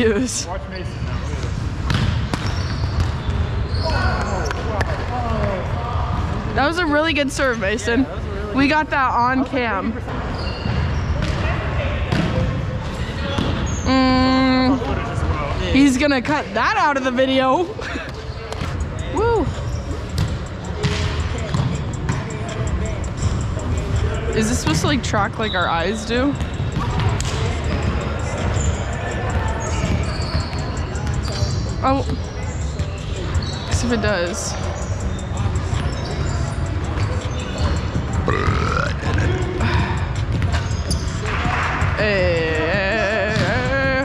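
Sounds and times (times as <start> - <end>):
murmur of voices in echoing hall: 0.0 - 44.0
players chattering: 2.5 - 44.0.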